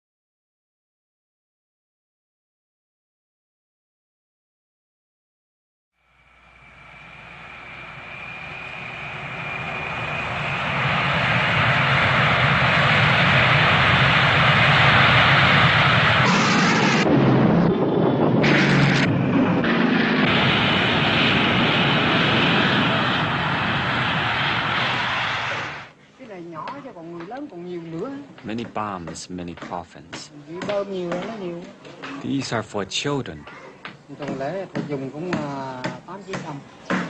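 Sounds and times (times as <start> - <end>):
jet engine roaring past: 6.0 - 26.0.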